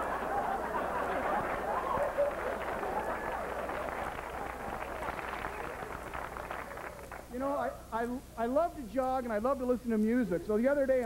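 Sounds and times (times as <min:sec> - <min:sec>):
audience laughing and clapping: 0:00.0 - 0:07.3.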